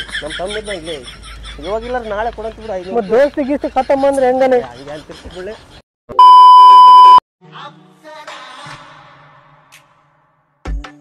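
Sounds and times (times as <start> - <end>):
test tone beep: 6.1 - 7.2.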